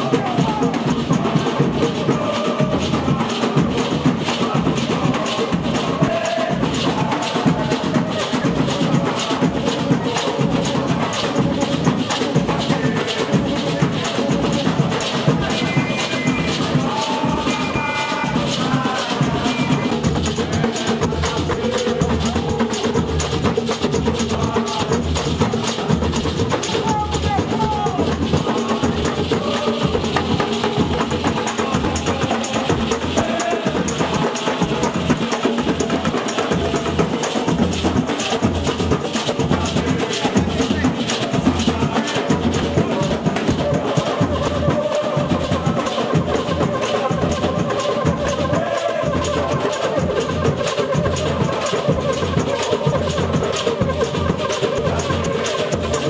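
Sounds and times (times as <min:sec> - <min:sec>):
samba percussion band: 0:00.0 - 0:56.0
voices: 0:00.0 - 0:56.0.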